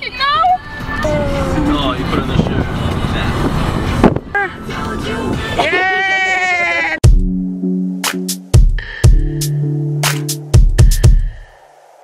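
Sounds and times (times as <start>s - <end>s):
car engine and tyre rumble: 0.0s - 5.6s.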